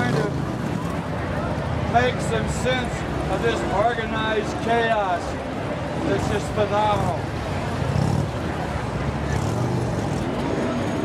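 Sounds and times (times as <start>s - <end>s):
crowd chatter: 0.0s - 11.0s
motorcycle engines rumbling: 0.0s - 11.0s.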